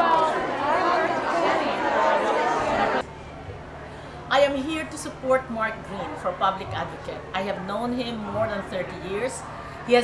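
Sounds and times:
crowd chatter: 0:00.0 - 0:10.0
low steady background noise: 0:00.0 - 0:10.0.

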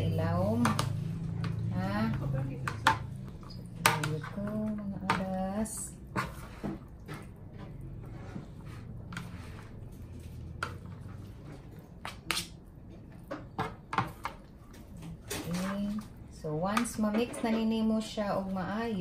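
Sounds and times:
soft wet stirring: 0:00.0 - 0:19.0.

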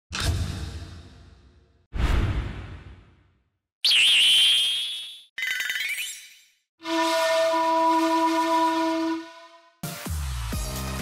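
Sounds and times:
deep boom with swoosh: 0:02.0 - 0:03.2.

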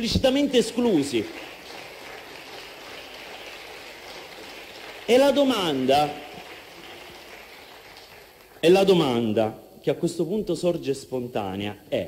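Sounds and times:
faint room noise hiss: 0:00.0 - 0:12.0.

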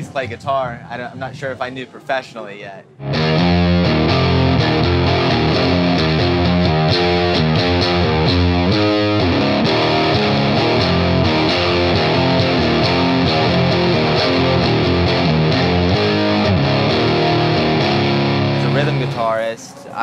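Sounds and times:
rock music with distorted guitar: 0:03.0 - 0:19.2.

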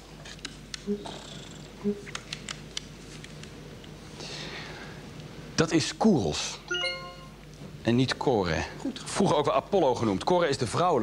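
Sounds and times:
short low beep: 0:06.7 - 0:07.4.

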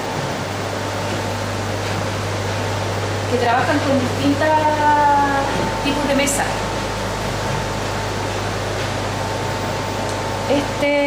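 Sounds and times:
fan hissing and humming: 0:00.0 - 0:11.0.

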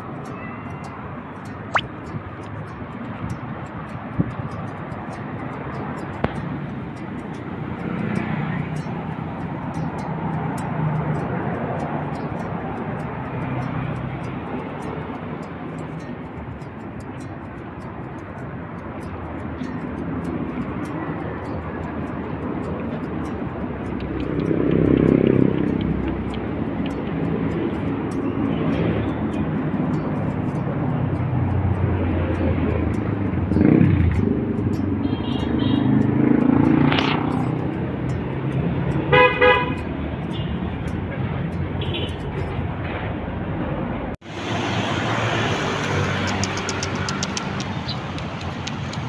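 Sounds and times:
vehicles passing: 0:00.0 - 0:49.0
vehicle horn tooting: 0:39.1 - 0:39.8.

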